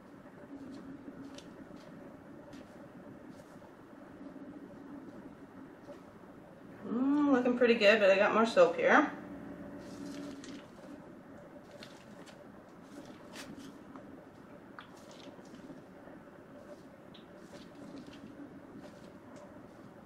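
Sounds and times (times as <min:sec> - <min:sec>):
faint hum: 0:00.0 - 0:20.0
plastic bag squishing and crinkling: 0:09.8 - 0:11.0, 0:11.6 - 0:14.0, 0:14.7 - 0:15.9, 0:16.7 - 0:20.0.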